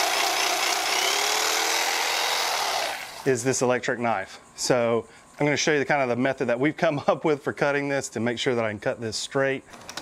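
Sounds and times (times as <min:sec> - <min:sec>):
electric carving knife running: 0:00.0 - 0:03.3.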